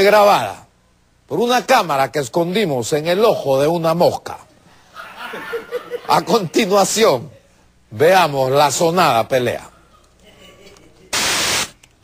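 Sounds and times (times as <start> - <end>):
loud static hiss: 0.0 - 9.7, 11.0 - 12.0.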